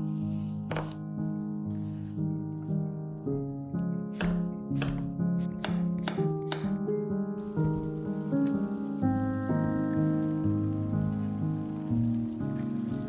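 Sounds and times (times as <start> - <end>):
background music: 0.0 - 13.0
vegetables sizzling in oil: 7.4 - 13.0.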